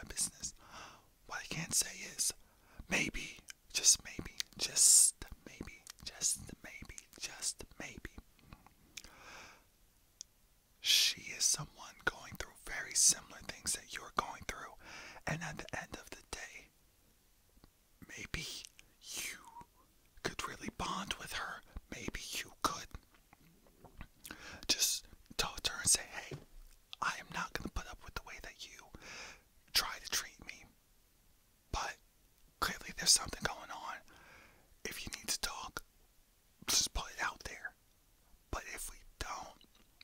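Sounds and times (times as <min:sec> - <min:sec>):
man whispering: 0:00.0 - 0:09.1, 0:10.8 - 0:16.8, 0:18.0 - 0:23.2, 0:24.2 - 0:29.0, 0:29.7 - 0:30.8, 0:31.7 - 0:32.0, 0:32.6 - 0:34.2, 0:34.8 - 0:35.9, 0:36.6 - 0:37.8, 0:38.5 - 0:39.8.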